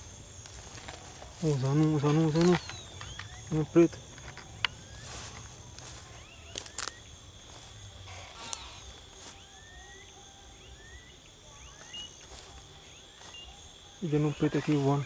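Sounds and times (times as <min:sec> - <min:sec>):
footsteps in grass: 0:00.0 - 0:09.8, 0:11.6 - 0:15.0
high-pitched insect drone: 0:00.0 - 0:15.0.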